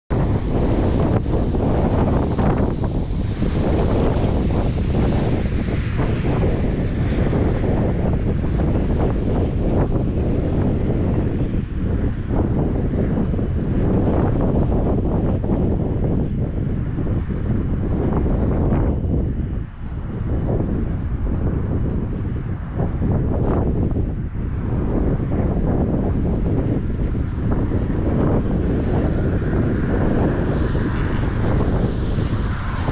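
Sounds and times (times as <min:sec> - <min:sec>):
wind buffeting microphone: 0:00.1 - 0:32.9.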